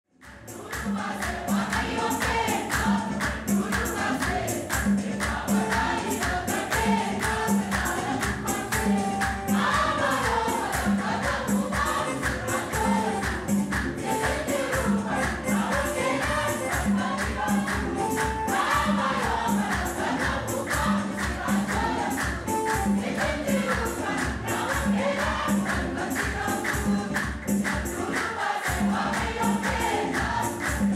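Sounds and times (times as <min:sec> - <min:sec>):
choir singing: 0:00.2 - 0:30.9
hand-clapping: 0:00.2 - 0:30.9
drum beat: 0:00.6 - 0:30.9.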